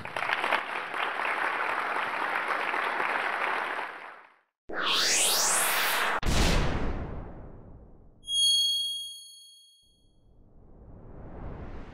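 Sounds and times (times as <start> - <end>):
rising whoosh: 4.7 - 7.6, 10.3 - 11.9
high bell-like ding: 8.2 - 10.1.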